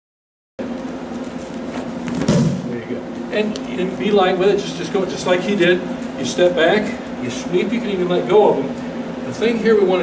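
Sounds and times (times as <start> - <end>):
steady low hum: 0.6 - 10.0.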